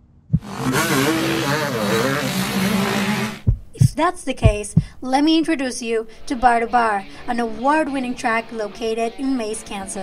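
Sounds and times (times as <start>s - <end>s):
dirt bike engines revving: 0.4s - 3.5s.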